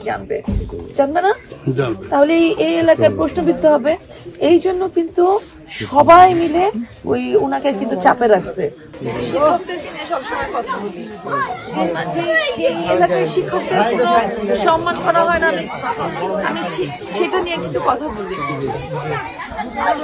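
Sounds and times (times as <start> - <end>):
voices chattering: 0.0 - 20.0.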